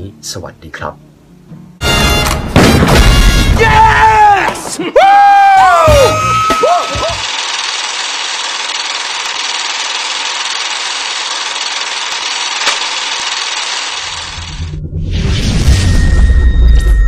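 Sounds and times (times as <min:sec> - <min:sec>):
old film static hiss: 0:07.0 - 0:14.5
low rumble: 0:14.2 - 0:17.0.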